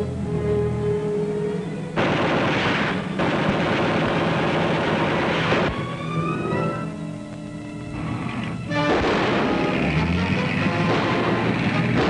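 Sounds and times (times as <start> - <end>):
orchestral film music: 0.0 - 12.0
rapid gunfire: 2.0 - 5.8, 8.8 - 12.0.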